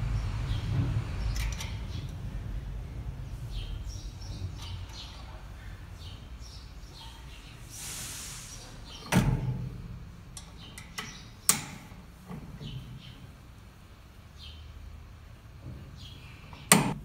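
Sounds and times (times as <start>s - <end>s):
sharp metal clicks: 1.3s - 2.2s, 10.4s - 12.0s.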